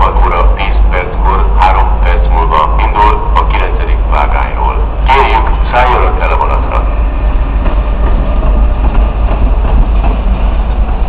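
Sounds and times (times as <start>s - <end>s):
loudspeaker voice announcing: 0.0s - 6.9s
steady low rumble: 0.0s - 11.0s.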